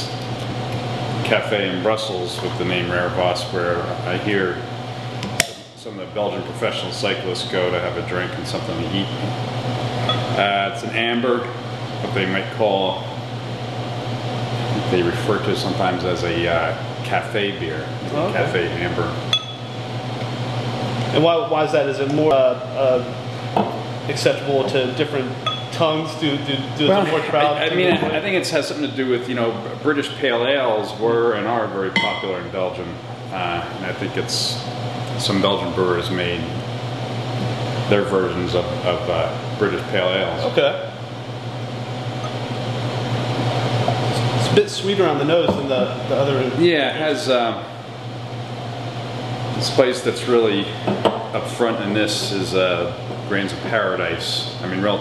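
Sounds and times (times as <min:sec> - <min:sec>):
background machinery hum and hiss: 0:00.0 - 0:55.0.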